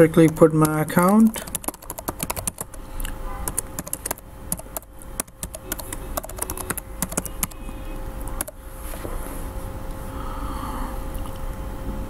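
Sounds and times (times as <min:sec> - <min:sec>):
typing on a computer keyboard: 0:00.0 - 0:02.8, 0:03.4 - 0:07.7, 0:08.3 - 0:08.6.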